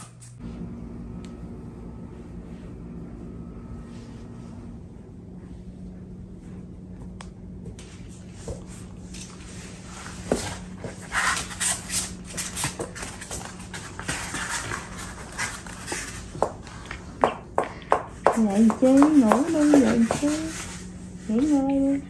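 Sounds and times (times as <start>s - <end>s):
puppy paws scratching cardboard: 6.3s - 22.0s.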